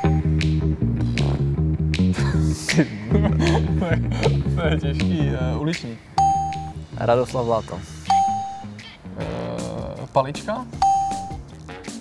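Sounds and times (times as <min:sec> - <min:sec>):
short bell-like ding: 0:00.0 - 0:00.2
looping background music: 0:00.0 - 0:12.0
man speaking: 0:03.5 - 0:06.0, 0:09.1 - 0:10.8.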